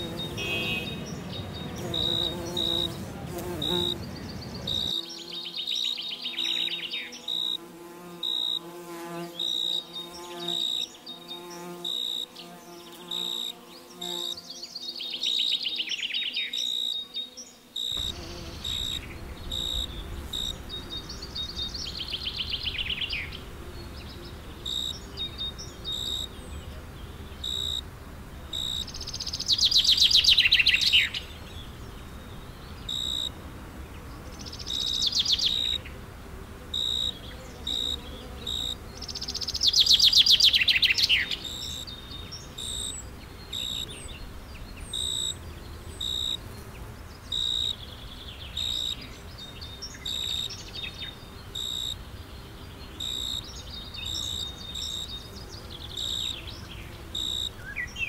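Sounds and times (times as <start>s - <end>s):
bird chirping: 0.0s - 7.4s, 9.4s - 27.8s, 28.5s - 33.3s, 36.8s - 58.0s
bee buzzing: 0.0s - 44.3s, 44.9s - 58.0s.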